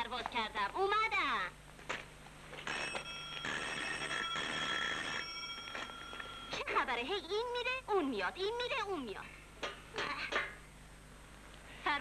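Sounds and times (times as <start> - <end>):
electric doorbell ringing: 2.7 - 6.6.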